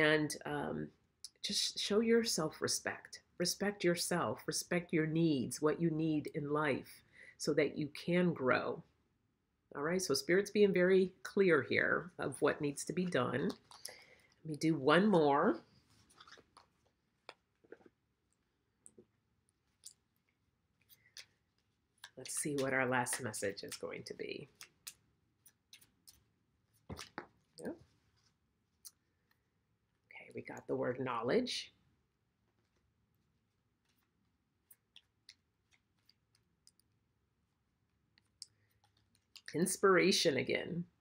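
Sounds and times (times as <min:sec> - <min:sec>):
cards being shuffled: 0:20.8 - 0:27.4.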